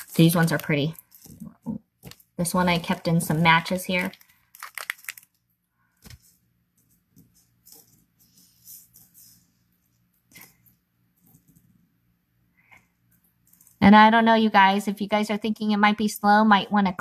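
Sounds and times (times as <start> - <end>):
plastic bag crinkling: 0.0 - 5.4.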